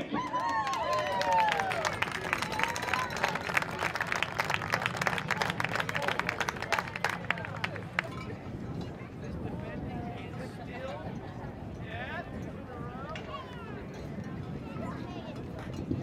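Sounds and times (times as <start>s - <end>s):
voices whooping: 0.0s - 3.9s
crowd clapping and cheering: 0.0s - 8.4s.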